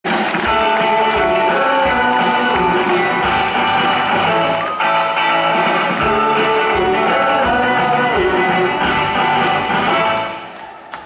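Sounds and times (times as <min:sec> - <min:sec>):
electric guitars: 0:00.1 - 0:11.0
live rock and roll band: 0:00.1 - 0:11.0
steady drum beat: 0:00.1 - 0:11.0
brass section chords: 0:00.5 - 0:04.7, 0:08.2 - 0:10.4.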